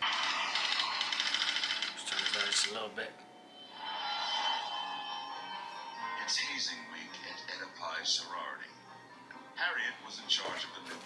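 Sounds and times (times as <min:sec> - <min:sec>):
steady soundtrack drone: 0:03.2 - 0:07.6.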